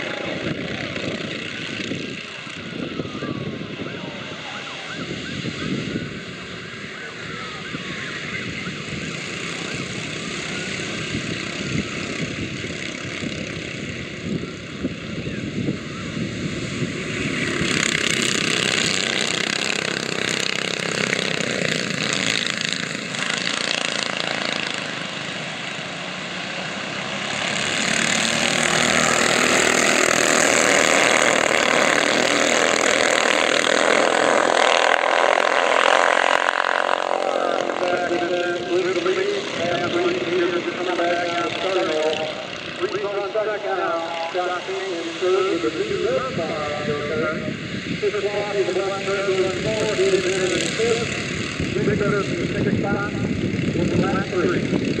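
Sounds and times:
go-kart engines racing: 0.0s - 55.0s.

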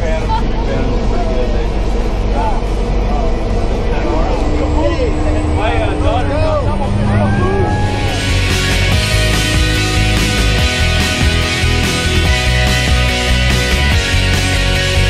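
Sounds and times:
people talking: 0.0s - 8.2s
propeller plane engine drone: 0.0s - 15.0s.

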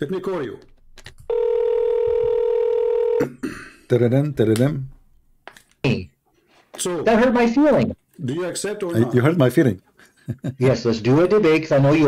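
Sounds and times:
telephone ringback tone: 1.3s - 3.2s.

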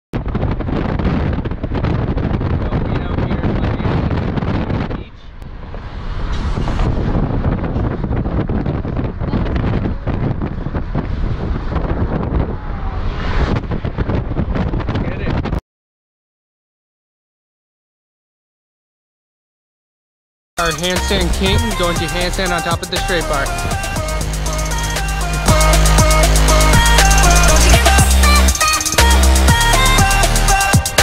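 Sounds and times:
wind buffeting microphone: 0.2s - 15.6s, 20.8s - 31.0s.

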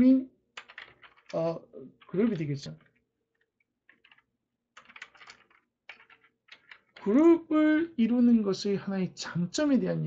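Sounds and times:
faint keyboard typing: 0.6s - 7.9s.

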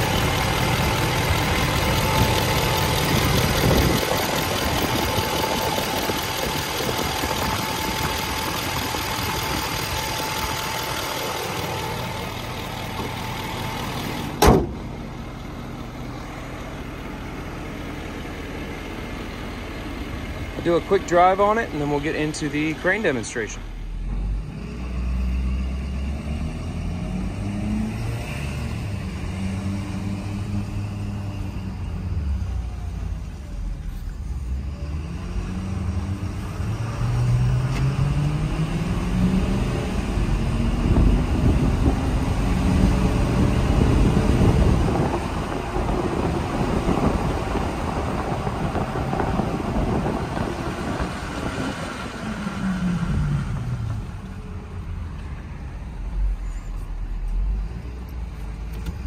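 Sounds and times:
diesel truck engine accelerating: 0.0s - 59.0s
road noise: 0.0s - 59.0s.

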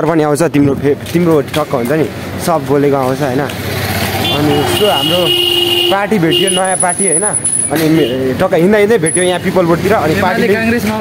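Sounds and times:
men talking: 0.0s - 11.0s
street traffic: 0.0s - 11.0s
high steady tone: 4.3s - 7.8s.

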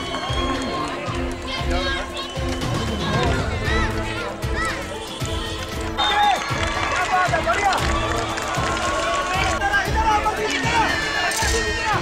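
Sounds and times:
voices shouting: 0.0s - 12.0s.

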